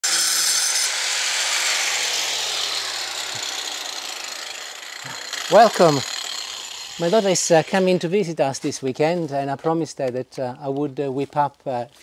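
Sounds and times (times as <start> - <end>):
angle grinder cutting mortar: 0.0 - 8.2.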